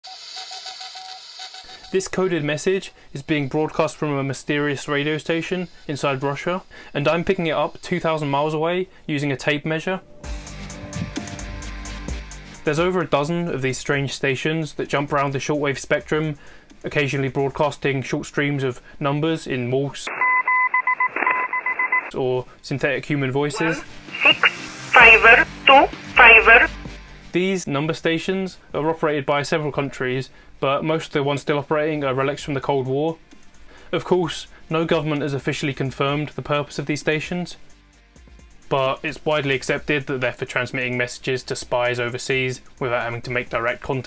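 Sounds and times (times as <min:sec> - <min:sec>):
morse code beeps: 0:20.1 - 0:22.1
morse code tone: 0:20.1 - 0:22.1, 0:23.6 - 0:26.7
radio static: 0:23.5 - 0:26.7.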